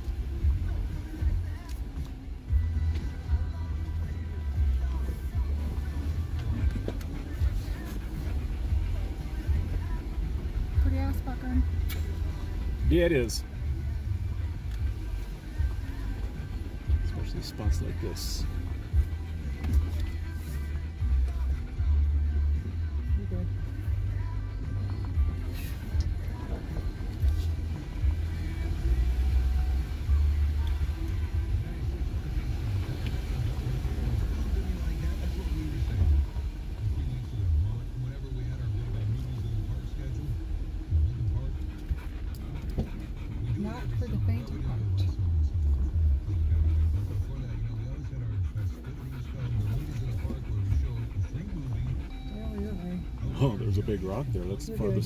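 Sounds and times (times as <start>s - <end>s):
car radio playing music: 0.0s - 55.0s
low uneven engine rumble: 0.0s - 55.0s.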